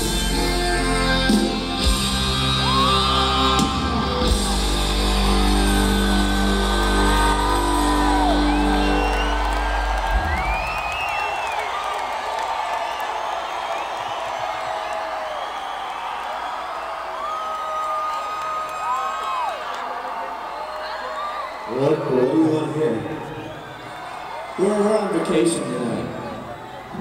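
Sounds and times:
audience cheering and whooping: 1.8 - 27.0
audience whistling: 2.0 - 19.8, 23.0 - 24.9.

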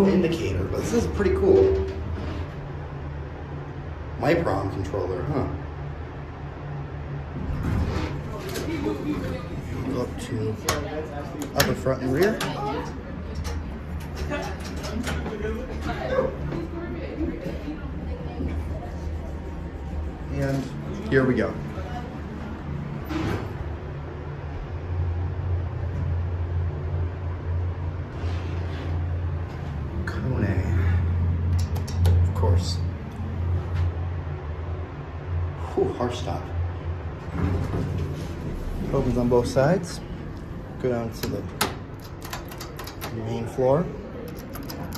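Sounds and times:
steady low hum: 0.0 - 44.9.

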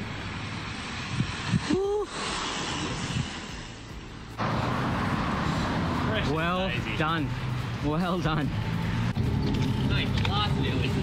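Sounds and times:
road noise: 0.0 - 11.0
wind on microphone: 0.9 - 1.9.

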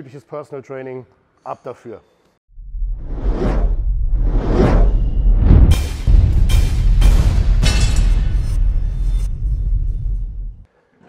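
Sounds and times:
deep steady rumble: 2.6 - 10.7
whooshes: 2.7 - 10.7.

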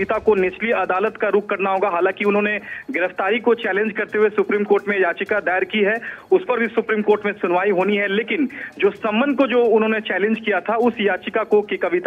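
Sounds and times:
person talking: 0.0 - 12.0.

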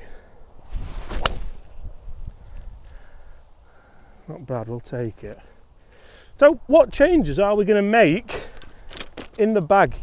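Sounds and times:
golf club swish: 0.6 - 1.9
club striking golf ball: 1.1 - 1.6.

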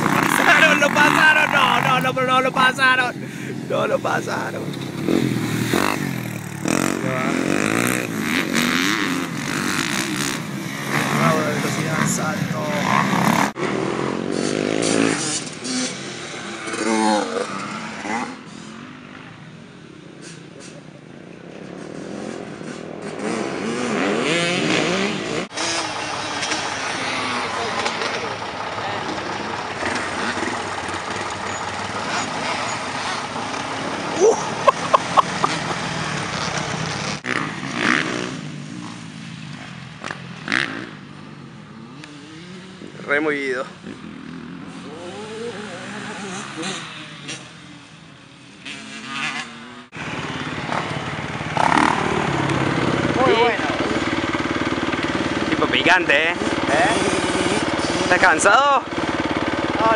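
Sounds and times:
dirt bike engines revving: 0.0 - 59.9.

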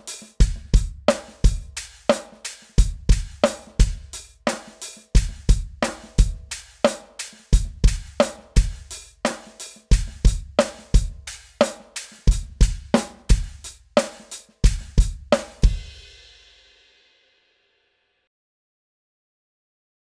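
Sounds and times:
drum kit playing a groove: 0.0 - 16.7.

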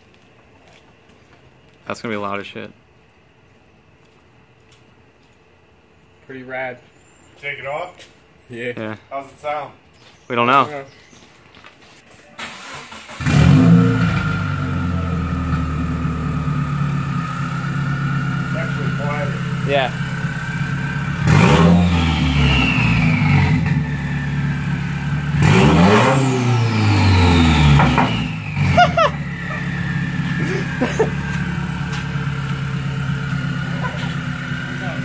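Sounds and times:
car engine starting: 12.4 - 35.0
engine revving: 12.6 - 35.0
car engine idling loudly: 14.3 - 25.4, 27.5 - 35.0.

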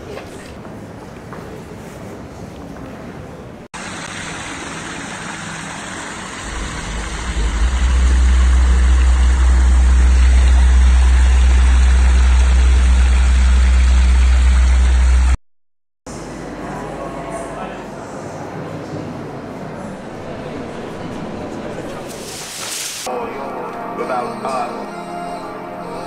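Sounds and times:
fountain splashing into pool: 3.8 - 15.4
loud low rumble: 6.3 - 15.4, 19.8 - 22.1.

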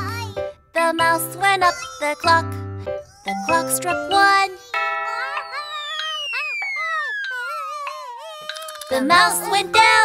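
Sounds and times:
cartoon character crying: 5.1 - 8.9
descending falling whistle: 5.8 - 7.8.

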